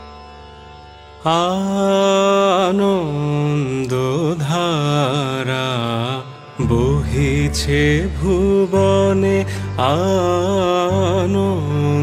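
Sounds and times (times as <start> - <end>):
person singing classical melody: 1.2 - 12.0.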